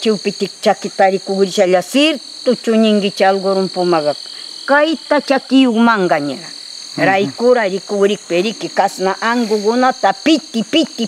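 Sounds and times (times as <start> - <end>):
insects droning: 0.0 - 11.0
woman speaking: 0.0 - 11.0.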